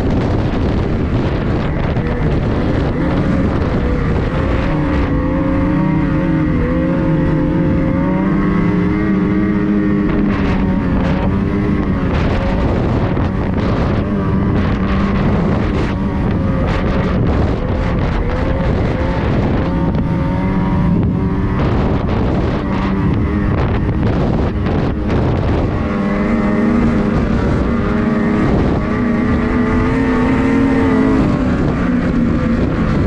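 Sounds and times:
snowmobile engine at speed: 0:00.0 - 0:33.0
wind on microphone: 0:00.0 - 0:33.0.

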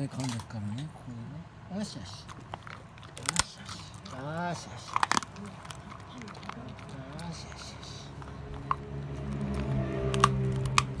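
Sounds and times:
dog crunching chew treat: 0:00.0 - 0:01.0, 0:01.8 - 0:11.0.

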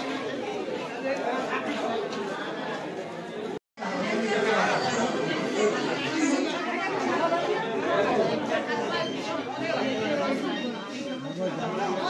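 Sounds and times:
overlapping crowd chatter: 0:00.0 - 0:12.0.

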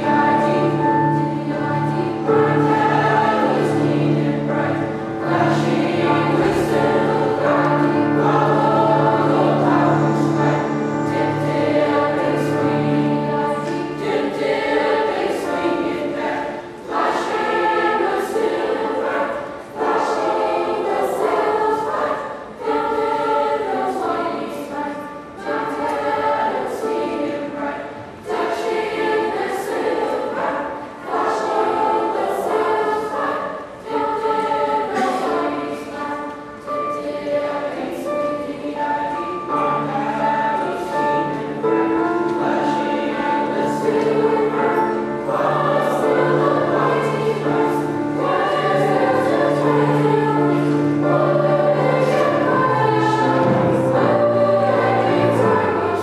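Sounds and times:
children's choir singing: 0:00.0 - 0:56.0.

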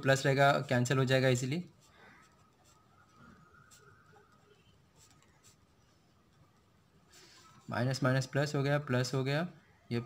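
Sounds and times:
pen scratching on paper: 0:01.6 - 0:02.9, 0:03.6 - 0:05.9.

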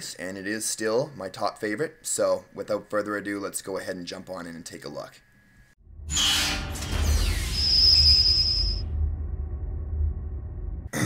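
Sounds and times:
high ringing tone: 0:06.1 - 0:09.1
deep bass rumble: 0:08.8 - 0:11.0.

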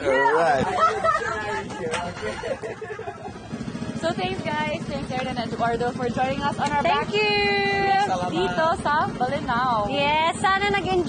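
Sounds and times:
small boat engine: 0:00.0 - 0:11.0
laughter: 0:00.6 - 0:03.6.

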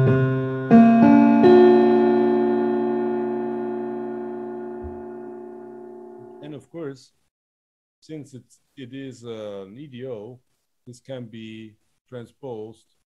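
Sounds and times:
keyboard chord ringing: 0:00.0 - 0:06.5.

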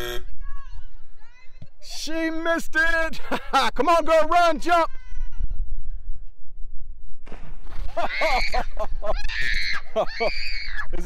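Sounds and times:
girl shrieking: 0:08.0 - 0:10.9.

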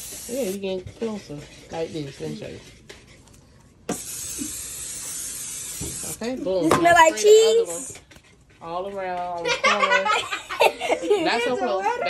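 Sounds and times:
aerosol spray hissing: 0:00.0 - 0:00.6, 0:03.9 - 0:06.3.

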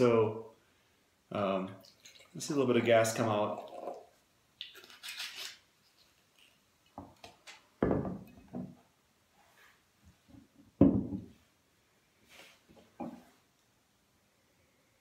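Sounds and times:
sparkling wine pouring and fizzing: 0:01.3 - 0:07.2
glass bottle knocking on table: 0:07.8 - 0:08.8, 0:10.8 - 0:11.3.

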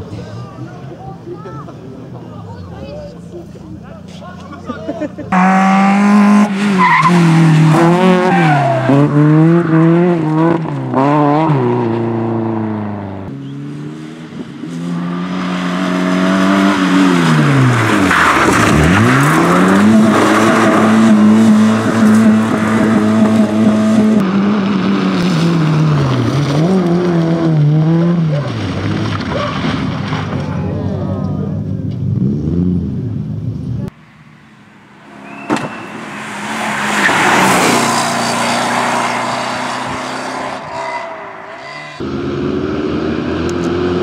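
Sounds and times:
rally car engines revving: 0:00.0 - 0:44.0.

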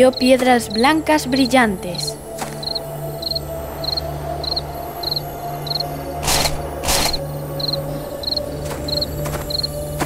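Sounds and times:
cricket chirping: 0:00.0 - 0:10.0
low steady drone: 0:00.0 - 0:10.0.

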